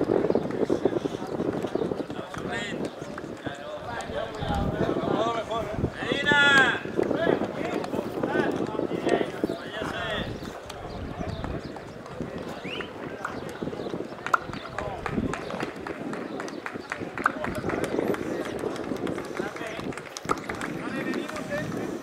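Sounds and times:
men calling out and talking: 0.1s - 22.0s.

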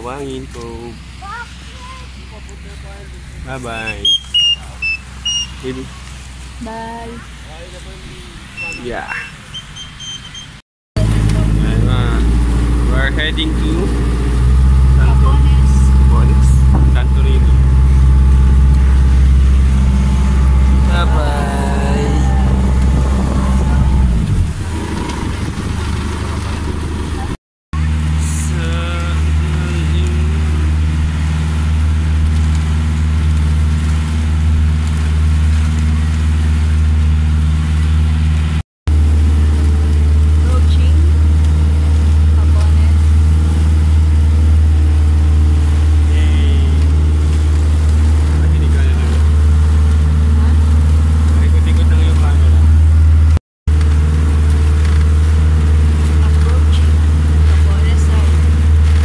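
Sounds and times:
boat engine humming: 0.0s - 59.0s.

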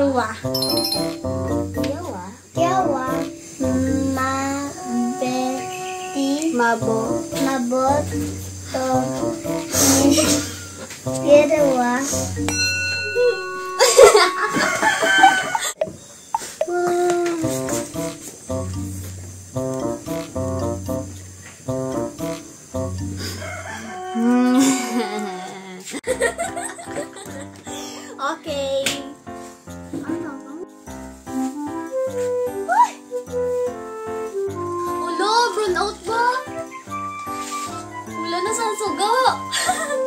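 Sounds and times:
light background music: 0.0s - 15.6s, 17.2s - 23.8s, 26.0s - 40.0s
girl singing playfully: 1.8s - 12.4s
rooster crowing: 13.8s - 15.8s, 23.2s - 25.8s.

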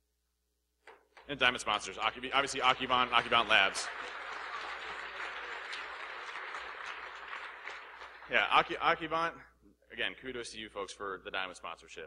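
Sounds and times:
audience applauding: 2.0s - 8.7s.

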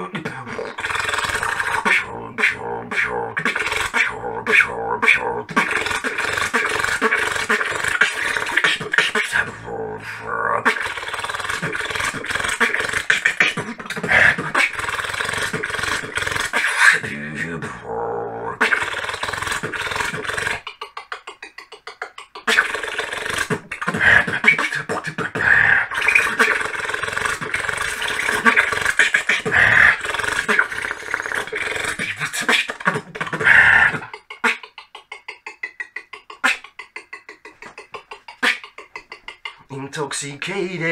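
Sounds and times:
held vocal sound: 0.0s - 40.9s
human beatboxing: 0.0s - 40.9s.

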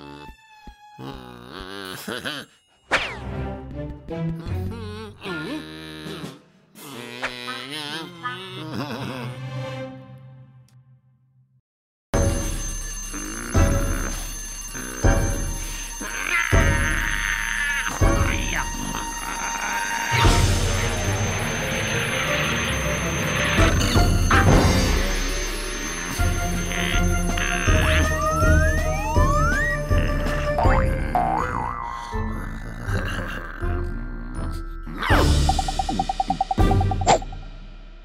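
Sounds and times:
background music: 0.0s - 6.6s, 12.2s - 38.0s
alarm clock ringing: 12.2s - 30.1s.

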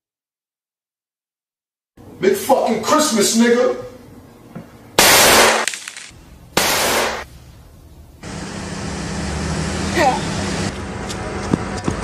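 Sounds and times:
pistol shots: 5.0s - 7.3s
street traffic noise: 5.9s - 12.0s.

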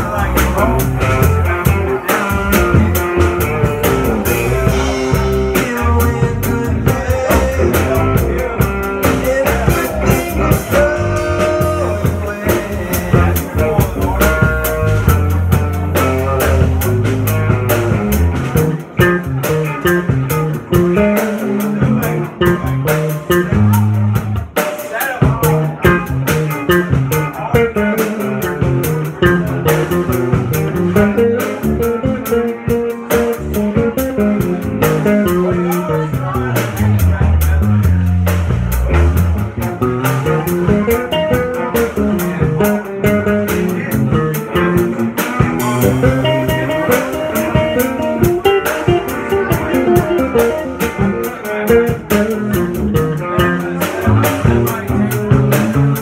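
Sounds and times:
drum kit: 0.0s - 56.0s
electric bass: 0.0s - 56.0s
electric guitar: 0.0s - 56.0s.

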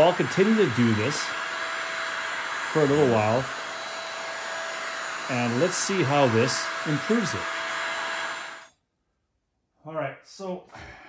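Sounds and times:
man speaking: 0.0s - 1.3s, 2.7s - 3.6s, 5.2s - 7.5s
heat gun blowing: 0.0s - 8.8s.

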